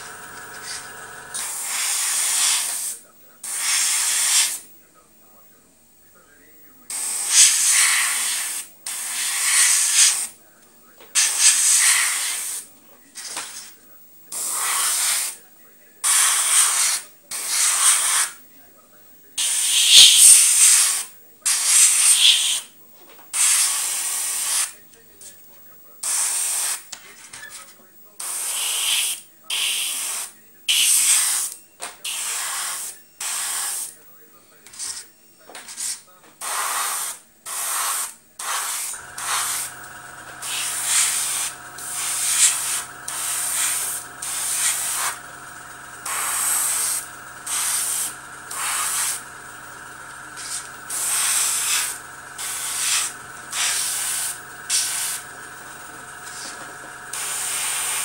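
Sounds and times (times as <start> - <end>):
compressor motor hum: 0.0 - 1.5, 38.9 - 58.0
airbrush spraying in hissing bursts: 0.0 - 4.6, 6.9 - 10.3, 11.2 - 12.6, 19.4 - 22.7, 28.2 - 31.5, 36.4 - 58.0.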